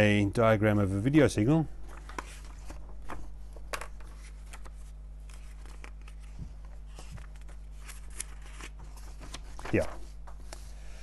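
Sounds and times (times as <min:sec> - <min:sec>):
paper pages flipping: 0:01.8 - 0:10.8.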